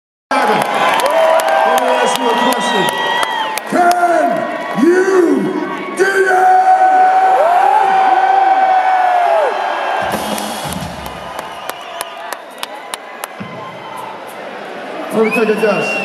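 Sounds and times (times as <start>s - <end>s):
crowd cheering and whooping: 0.3s - 16.0s.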